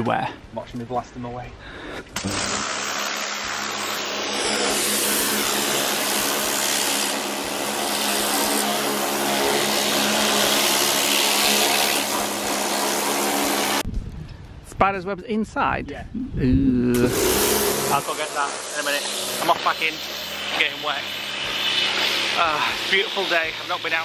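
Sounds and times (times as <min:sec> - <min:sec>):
pressure washer running: 0:02.2 - 0:13.8, 0:17.0 - 0:24.0.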